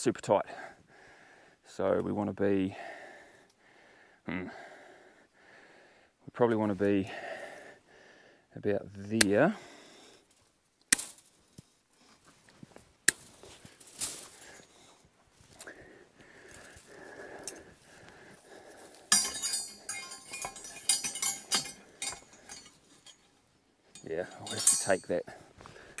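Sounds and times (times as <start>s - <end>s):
wire mesh clinking and rattling: 18.9s - 25.4s.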